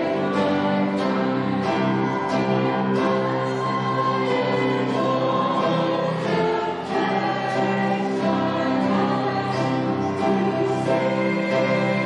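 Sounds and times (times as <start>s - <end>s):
congregation singing a hymn: 0.0s - 12.0s
instrumental accompaniment: 0.0s - 12.0s.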